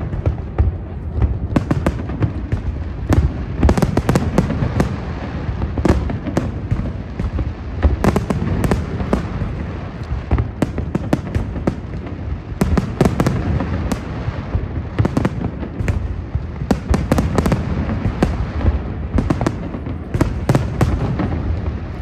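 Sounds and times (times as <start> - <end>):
fireworks bangs and crackles: 0.0 - 22.0
low fireworks rumble: 0.0 - 22.0.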